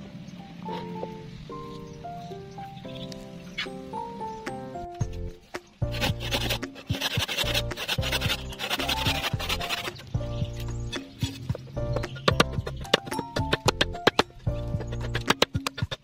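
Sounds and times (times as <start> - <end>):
instrumental music: 0.0 - 16.0
handsaw cutting wood: 5.8 - 10.1, 12.3 - 16.0.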